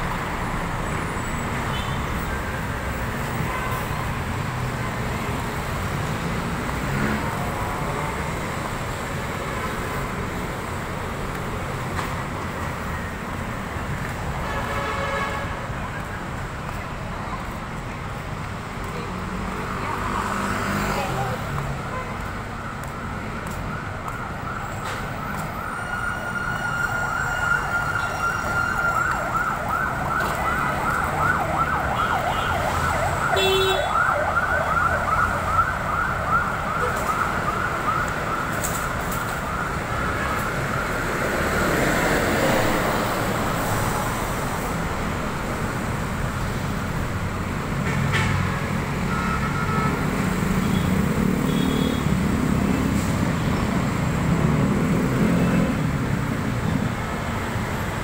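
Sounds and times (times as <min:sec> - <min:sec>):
street traffic: 0:00.0 - 0:58.0
ambulance siren yelping: 0:23.7 - 0:40.2.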